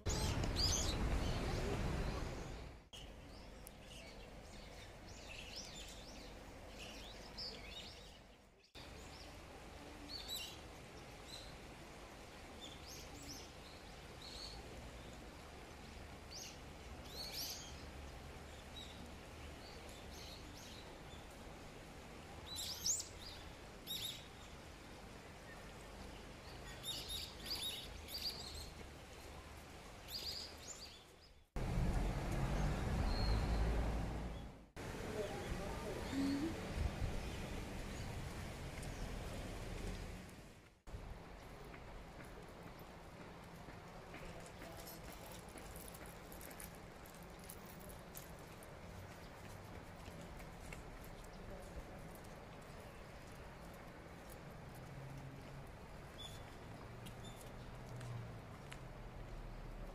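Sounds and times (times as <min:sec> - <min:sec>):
small birds chirping: 0:00.0 - 0:31.6, 0:32.4 - 0:40.3, 0:41.5 - 0:58.8
faint outdoor background: 0:00.0 - 0:59.9.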